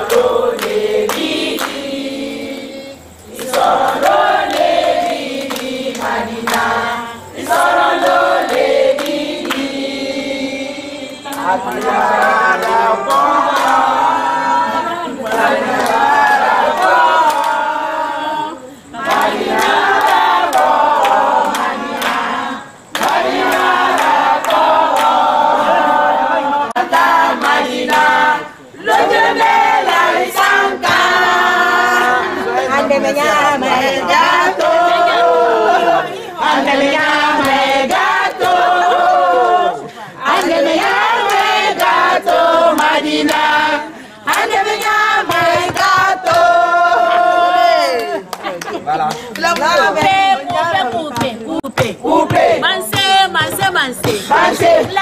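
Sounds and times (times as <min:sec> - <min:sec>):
group singing in chorus: 0:00.0 - 0:55.0.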